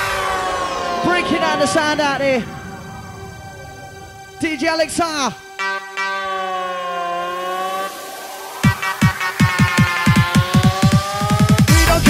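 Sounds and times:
siren-like synthesizer tone: 0.0s - 11.4s.

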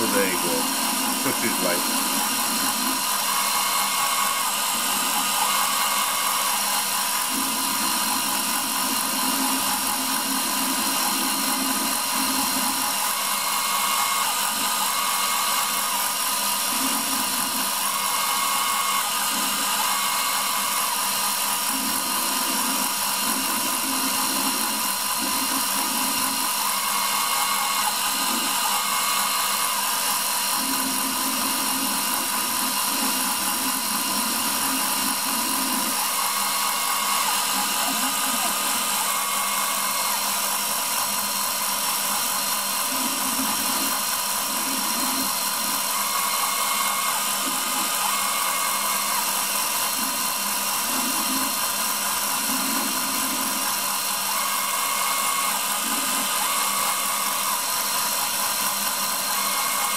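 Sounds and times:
machine axis motor tone: 0.0s - 59.9s
router spindle whine: 0.0s - 59.9s.

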